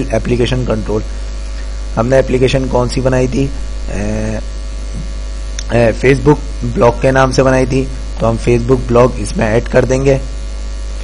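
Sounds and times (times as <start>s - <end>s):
low electrical mains hum: 0.0s - 11.0s
man's drawn-out hesitation: 0.0s - 11.0s.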